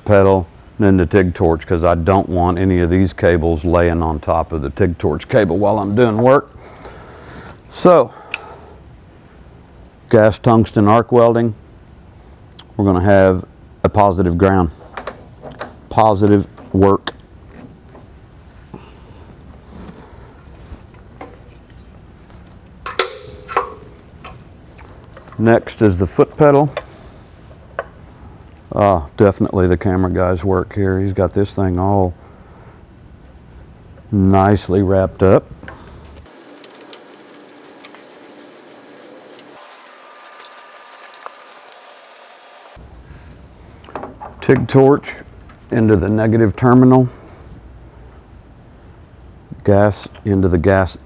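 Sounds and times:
sharp metal clanks: 22.8s - 24.4s.

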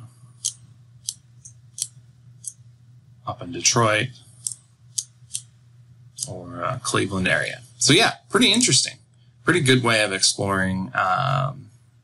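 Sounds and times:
low steady hum: 0.0s - 12.0s
computer mouse clicking: 0.4s - 2.6s, 4.4s - 5.5s.

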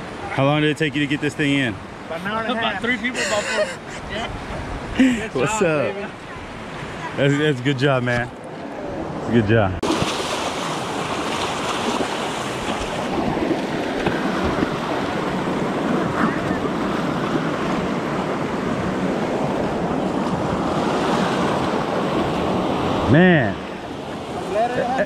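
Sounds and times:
small waves breaking: 0.0s - 25.0s.

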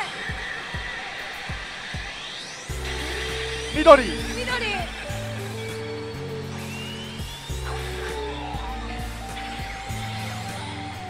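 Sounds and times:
steady rushing noise: 0.0s - 11.0s
steady low beat: 2.7s - 10.8s
pachinko machine music: 2.8s - 5.8s.

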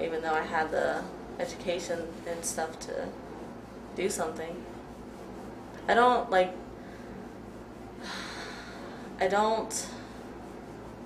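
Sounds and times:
woman breathing in: 8.0s - 9.2s.

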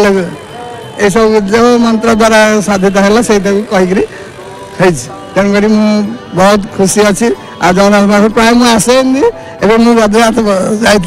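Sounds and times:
man talking into a microphone: 0.0s - 4.2s, 4.8s - 11.0s.

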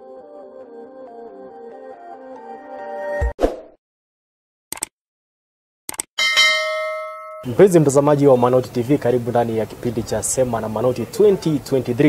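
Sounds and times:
bell chime: 6.2s - 7.8s.

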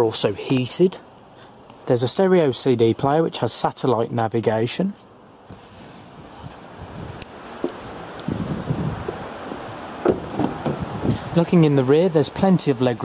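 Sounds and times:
car door opening: 9.0s - 11.2s.

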